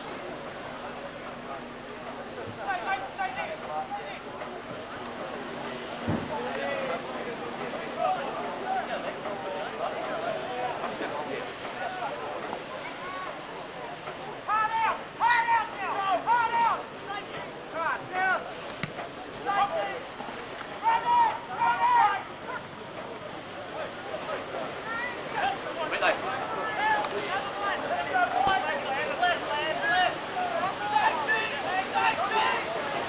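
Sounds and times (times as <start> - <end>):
murmur of chatter: 0.0 - 33.0.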